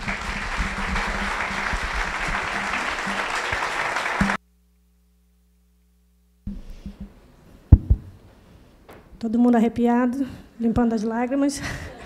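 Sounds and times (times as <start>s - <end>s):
audience applauding: 0.0s - 4.4s.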